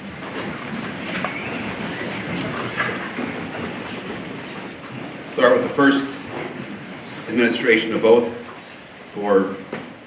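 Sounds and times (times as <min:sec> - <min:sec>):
chairs scraping and creaking: 0:00.0 - 0:10.0.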